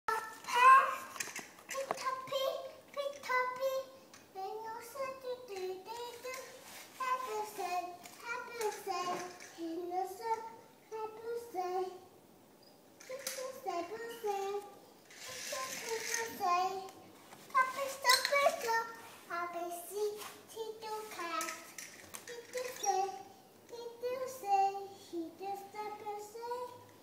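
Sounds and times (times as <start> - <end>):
toddler babbling sing-song: 0.1 - 12.1, 13.0 - 27.0.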